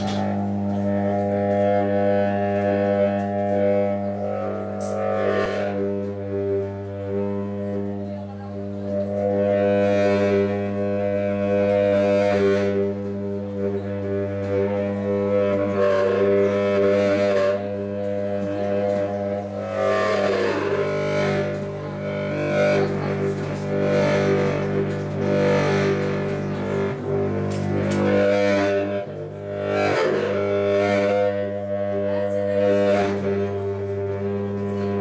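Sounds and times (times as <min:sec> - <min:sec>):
contrabass saxophone low drone: 0:00.0 - 0:35.0.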